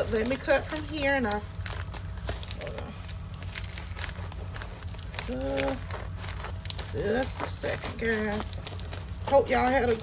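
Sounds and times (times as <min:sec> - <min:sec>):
plastic crinkling: 0:00.0 - 0:10.0
scissors snipping plastic: 0:00.0 - 0:10.0.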